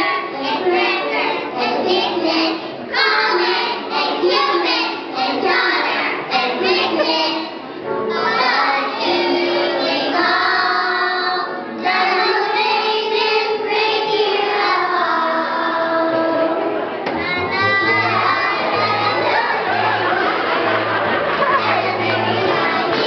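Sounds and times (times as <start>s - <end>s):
children singing together: 0.0s - 23.0s.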